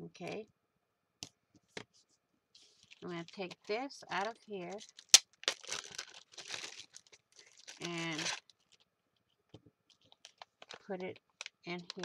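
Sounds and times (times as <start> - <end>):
plastic bag crinkling: 2.6 - 8.9, 9.9 - 12.0.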